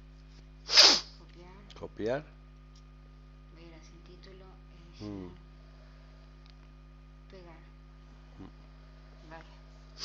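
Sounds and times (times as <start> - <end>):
person sneezing: 0.7 - 1.1.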